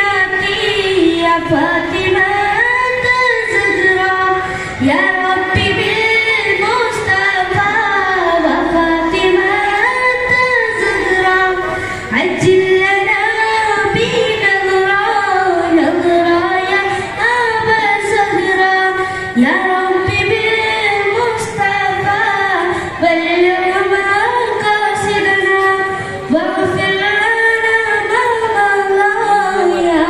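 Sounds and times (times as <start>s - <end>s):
boy singing through microphone: 0.0s - 30.0s.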